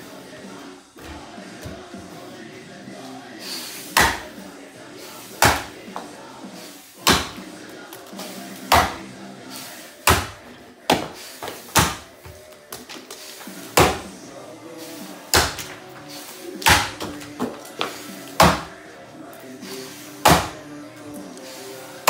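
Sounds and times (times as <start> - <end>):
axe chopping wood: 4.0 - 4.3, 5.4 - 5.7, 7.0 - 7.4, 8.7 - 9.0, 10.0 - 12.1, 13.8 - 14.1, 15.3 - 15.8, 16.6 - 18.7, 20.2 - 20.6.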